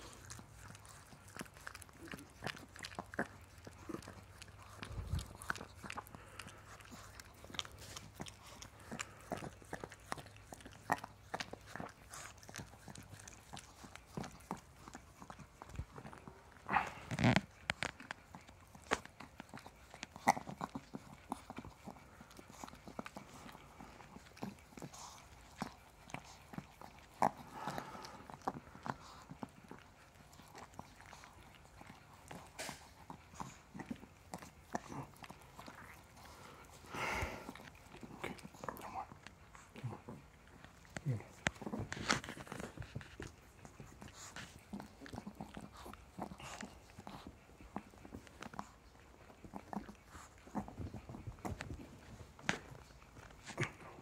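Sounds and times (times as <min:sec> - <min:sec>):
dog licking face: 0:00.0 - 0:54.0.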